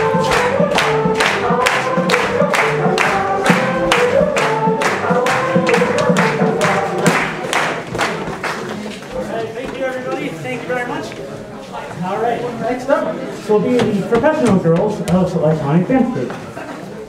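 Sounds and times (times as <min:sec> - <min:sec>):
folk dance music with singing: 0:00.0 - 0:09.4.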